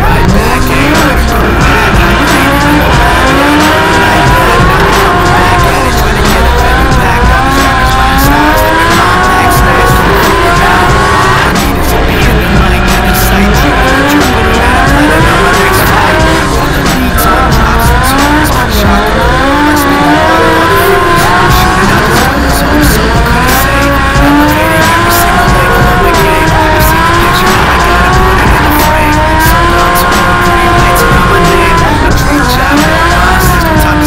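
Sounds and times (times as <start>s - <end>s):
car engine revving: 0.0s - 34.0s
music track: 0.0s - 34.0s
tyres squealing: 0.0s - 34.0s.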